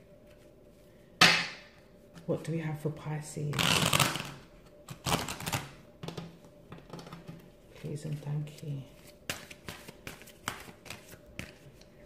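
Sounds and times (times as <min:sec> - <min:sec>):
cards being shuffled: 0:07.3 - 0:12.0.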